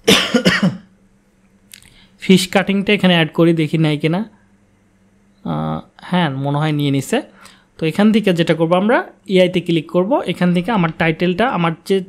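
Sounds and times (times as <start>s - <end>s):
man coughing: 0.0s - 0.9s.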